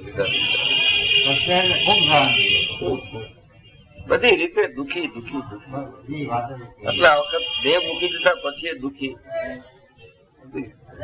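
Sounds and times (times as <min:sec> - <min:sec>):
man speaking: 0:01.2 - 0:03.3, 0:04.1 - 0:09.6.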